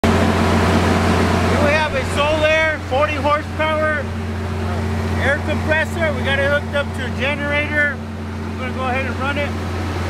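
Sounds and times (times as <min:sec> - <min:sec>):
generator humming: 0:00.0 - 0:10.0
man speaking: 0:01.5 - 0:08.0, 0:08.6 - 0:09.5.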